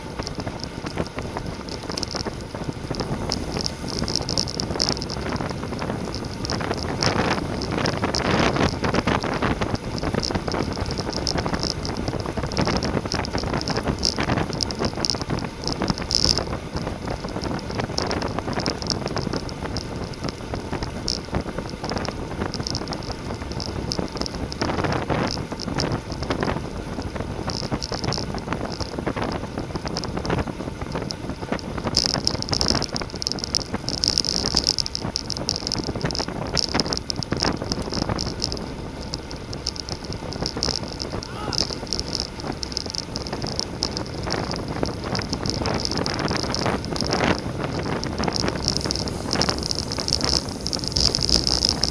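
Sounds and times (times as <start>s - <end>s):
bicycle tyres on asphalt: 0.0s - 51.9s
wind rushing over microphone: 0.0s - 51.9s.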